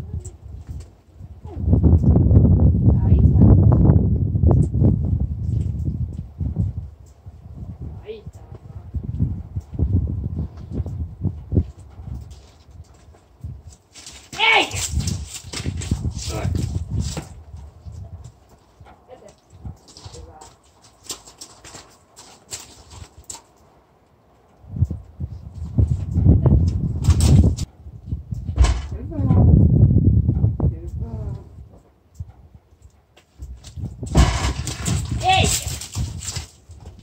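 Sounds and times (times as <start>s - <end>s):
woman speaking: 8.0s - 8.6s, 19.1s - 19.4s, 20.1s - 20.6s, 28.9s - 29.5s, 35.2s - 35.7s
hooves on gravel: 8.4s - 23.7s, 33.2s - 37.0s
hooves knocking on trailer ramp: 33.2s - 37.0s.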